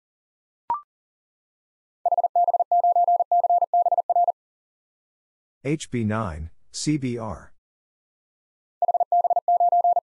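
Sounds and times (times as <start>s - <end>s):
morse code tone: 2.1s - 4.3s, 8.8s - 10.0s.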